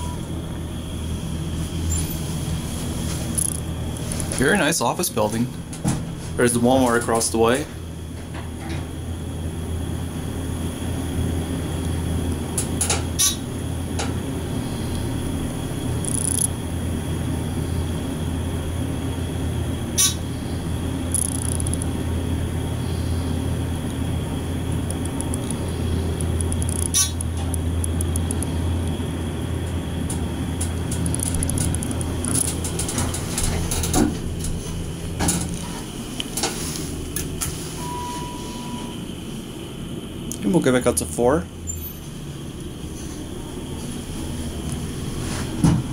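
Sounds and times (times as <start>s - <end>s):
elevator low hum: 0.0s - 45.9s
short beep: 37.8s - 39.0s.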